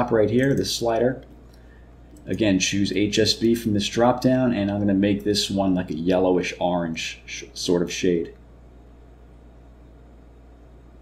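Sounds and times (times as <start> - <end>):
low hum with faint hiss: 0.0 - 11.0.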